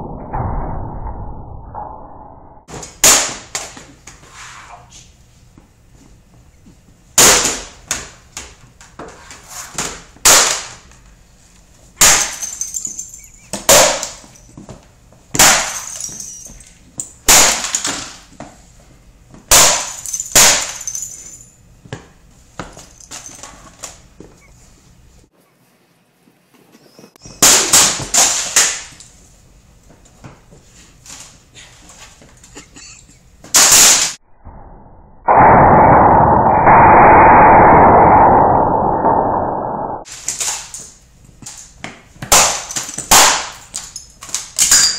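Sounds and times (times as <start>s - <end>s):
laptops smashing on concrete: 12.0s - 14.4s, 15.4s - 16.7s, 19.5s - 21.4s, 42.3s - 44.9s
broken pieces clattering: 12.0s - 14.6s, 15.5s - 16.8s
loud steady rushing noise: 35.3s - 40.0s.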